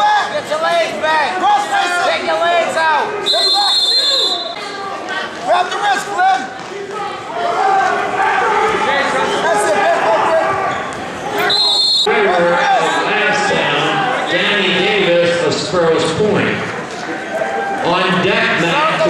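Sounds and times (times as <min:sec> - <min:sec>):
spectators and coaches shouting: 0:00.0 - 0:19.0
referee's whistle: 0:03.2 - 0:04.6, 0:10.7 - 0:12.1.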